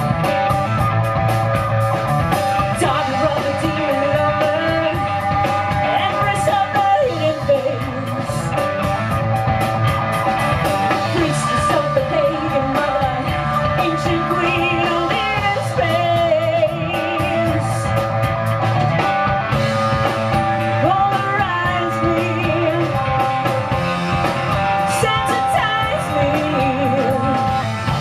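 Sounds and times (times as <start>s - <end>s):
drums and cymbals: 0.0s - 28.0s
live rock band: 0.0s - 28.0s
woman singing: 2.7s - 8.6s, 11.1s - 17.9s, 20.7s - 23.6s, 24.8s - 27.7s.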